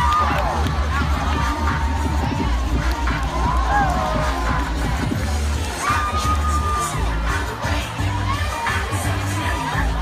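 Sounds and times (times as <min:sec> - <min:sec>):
children shouting: 0:00.0 - 0:04.7, 0:05.6 - 0:10.0
crowd cheering: 0:00.0 - 0:10.0
music with heavy bass beat: 0:00.0 - 0:10.0.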